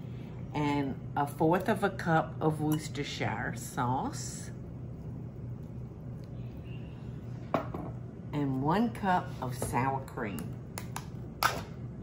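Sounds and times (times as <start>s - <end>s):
kitchen room hum: 0.0s - 12.0s
glass set down on stone: 7.5s - 8.0s.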